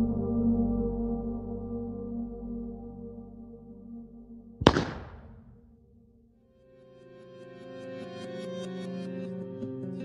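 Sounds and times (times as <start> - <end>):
low sustained musical drone: 0.0 - 4.6
loud sharp bang ringing: 4.6 - 5.8.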